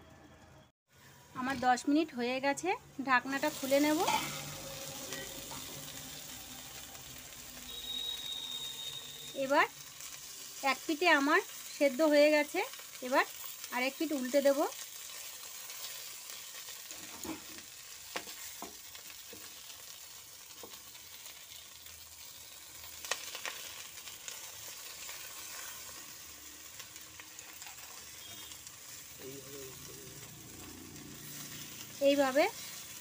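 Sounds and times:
fish sizzling in oil: 0:01.0 - 0:33.0.

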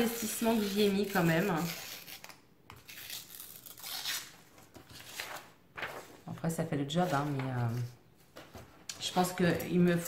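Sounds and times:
paper tearing in short rips: 0:00.0 - 0:06.1.

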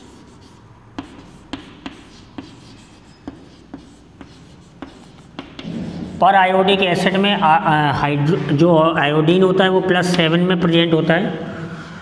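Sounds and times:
chalk tapping and scratching: 0:00.0 - 0:06.2.

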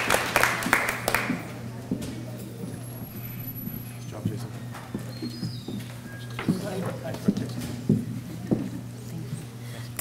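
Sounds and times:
audience murmuring: 0:00.0 - 0:10.0
steady low hum: 0:00.0 - 0:10.0.

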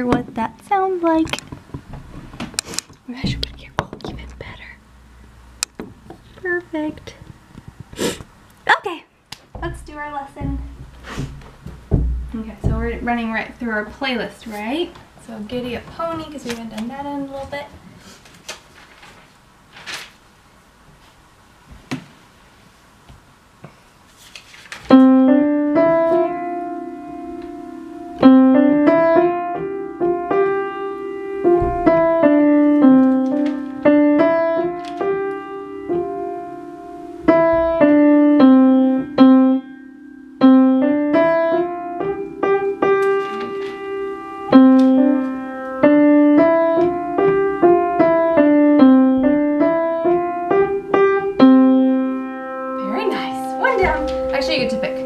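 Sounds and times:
upright piano piece: 0:09.5 - 0:14.4, 0:24.9 - 0:55.0.

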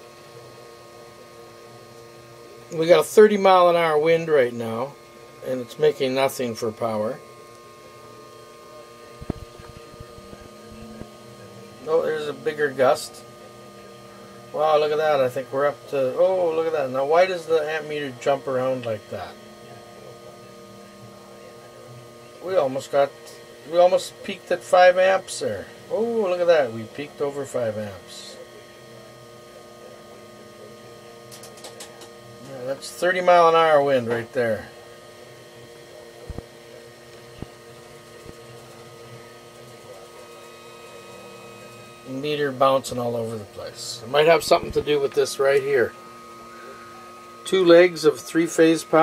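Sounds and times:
steady electrical hum: 0:00.0 - 0:49.0.

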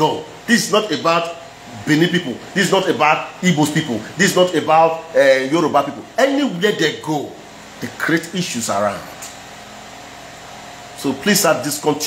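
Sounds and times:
room hum with faint hiss: 0:00.0 - 0:12.0.

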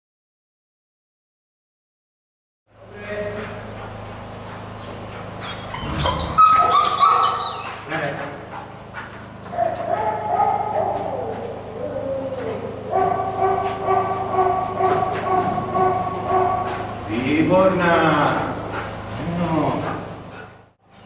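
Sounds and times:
steady low hum: 0:02.7 - 0:20.8
dog whining and yelping: 0:04.8 - 0:07.9, 0:09.5 - 0:16.8.

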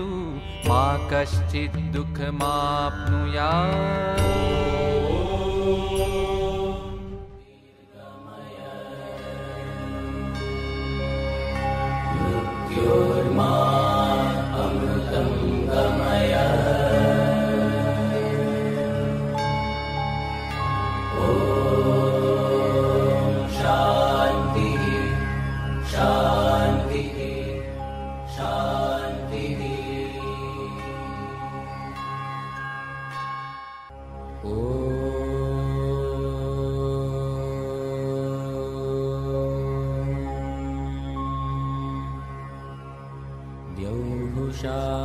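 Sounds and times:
person chanting: 0:00.0 - 0:10.5, 0:12.1 - 0:19.0, 0:21.2 - 0:27.6, 0:28.3 - 0:31.3, 0:34.4 - 0:40.3, 0:43.7 - 0:45.0
drone accompaniment: 0:03.5 - 0:45.0.

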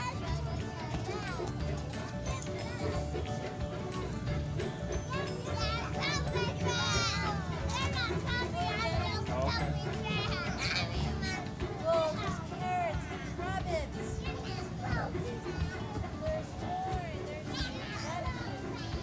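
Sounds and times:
background music: 0:00.0 - 0:19.0
children shouting: 0:00.0 - 0:19.0
young children chattering: 0:00.0 - 0:19.0.

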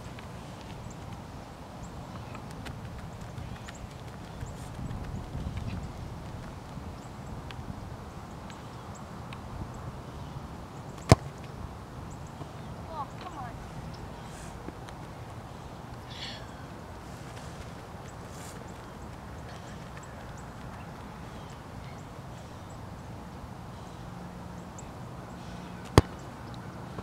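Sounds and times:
ball kicked thud: 0:11.1 - 0:11.3, 0:25.9 - 0:26.2.

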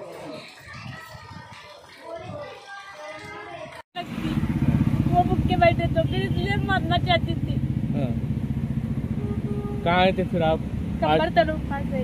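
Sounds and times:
loud steady low rumble: 0:04.0 - 0:12.0.

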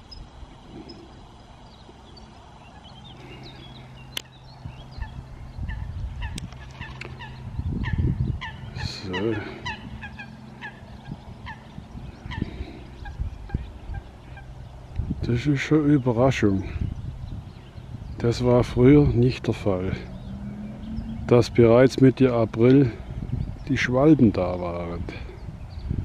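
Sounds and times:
birds calling: 0:00.0 - 0:26.0
wind rumble on microphone: 0:00.0 - 0:26.0
lower wavering bird call: 0:02.7 - 0:14.8, 0:19.4 - 0:23.6.

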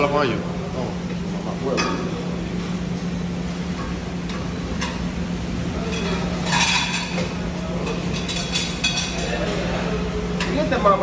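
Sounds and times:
kitchen machinery humming: 0:00.0 - 0:11.0.

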